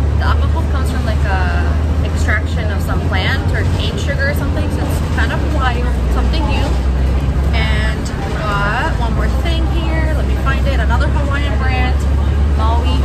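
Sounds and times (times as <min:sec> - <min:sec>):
bus engine and road rumble: 0:00.0 - 0:13.0.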